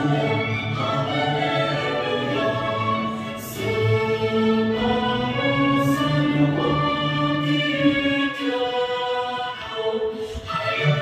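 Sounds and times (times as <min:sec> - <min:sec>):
voices singing slow song: 0:00.0 - 0:11.0.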